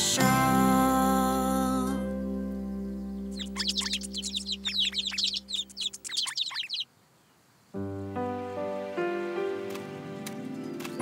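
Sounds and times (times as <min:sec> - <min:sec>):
cartoon birds chirping: 0:03.2 - 0:07.0.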